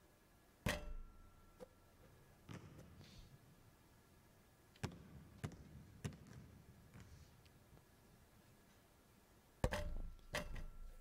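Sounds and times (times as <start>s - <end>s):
ball striking hoop: 0.6s - 1.1s, 9.6s - 10.7s
basketball bouncing on hardwood: 4.8s - 7.1s.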